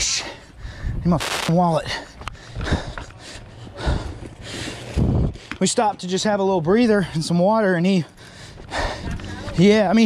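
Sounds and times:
person breathing hard: 0:00.2 - 0:01.0, 0:01.8 - 0:05.6, 0:08.2 - 0:09.6.

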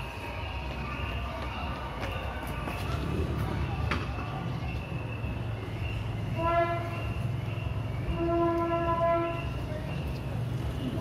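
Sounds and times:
distant horn blasts: 0:06.2 - 0:09.7.

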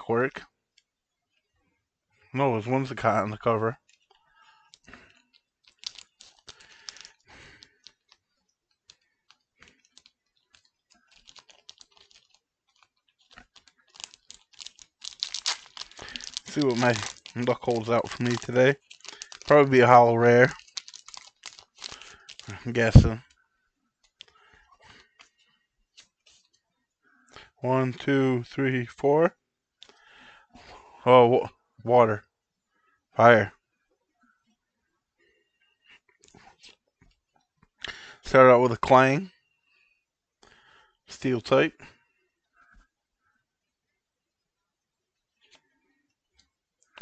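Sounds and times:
wrapper crinkling: 0:03.8 - 0:23.2
trading cards clicking: 0:05.7 - 0:08.2, 0:09.7 - 0:19.7.

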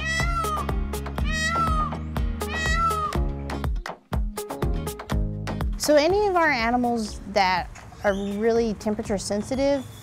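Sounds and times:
peacock calling: 0:00.0 - 0:03.3
background music with steady beat: 0:00.0 - 0:07.5.

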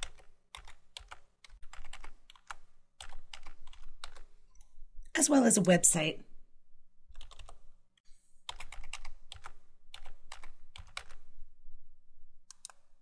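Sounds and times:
computer keyboard typing: 0:00.0 - 0:04.3, 0:07.1 - 0:07.6, 0:08.5 - 0:11.3, 0:12.5 - 0:13.0.

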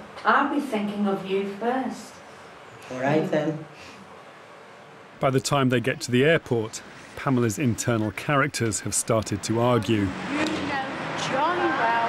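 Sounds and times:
faint voices: 0:05.2 - 0:12.0
car driving past: 0:09.4 - 0:12.0.

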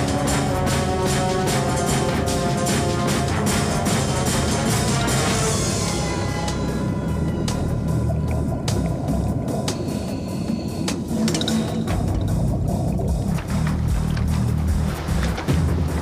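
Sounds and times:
film score music: 0:00.0 - 0:16.0
low dense rumble: 0:01.2 - 0:16.0.

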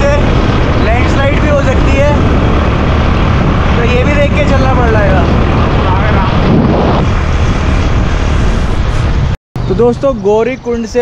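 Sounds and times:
wind rush on microphone: 0:00.0 - 0:11.0.

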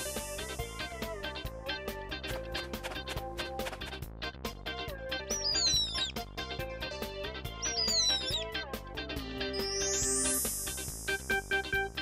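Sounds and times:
upbeat children's music: 0:00.0 - 0:12.0
cartoon bird chirp: 0:05.3 - 0:06.2, 0:07.6 - 0:08.5, 0:09.6 - 0:10.2.

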